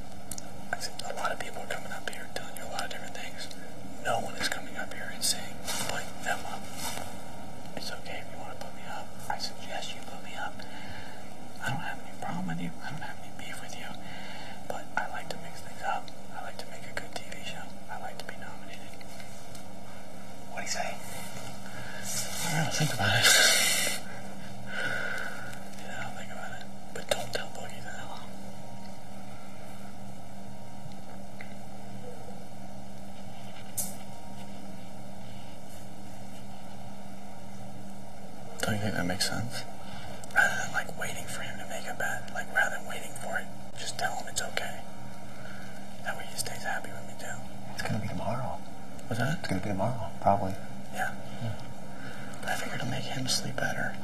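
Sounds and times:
background hiss: 0.0 - 54.0
electrical hum: 0.0 - 54.0
person whispering: 0.7 - 6.9, 7.8 - 10.7, 11.6 - 14.0, 14.6 - 19.0, 20.5 - 21.2, 22.0 - 24.0, 25.8 - 28.4, 40.3 - 44.9, 46.0 - 48.6, 52.4 - 54.0.

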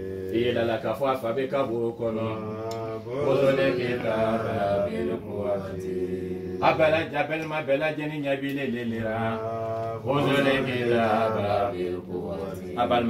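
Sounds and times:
man chanting prayer: 0.0 - 13.0.

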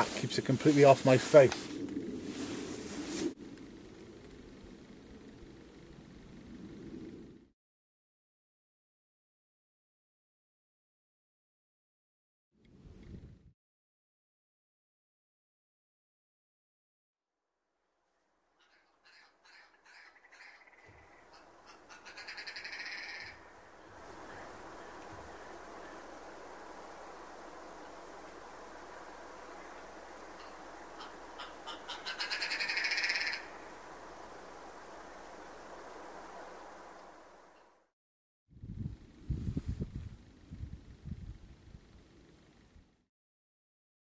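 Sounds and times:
steady hiss: 0.0 - 6.9, 23.3 - 37.7
low rumble on microphone: 12.7 - 13.5, 38.6 - 43.0
grouse calling: 18.6 - 26.5, 27.7 - 33.8.

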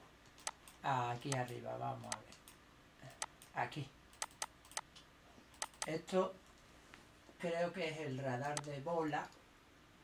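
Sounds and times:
computer mouse clicking: 0.2 - 6.0, 8.4 - 9.4.

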